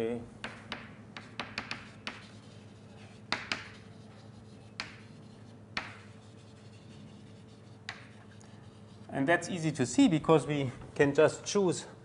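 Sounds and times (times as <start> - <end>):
faint room hum: 0.0 - 12.0
chalk tapping on blackboard: 0.4 - 9.1.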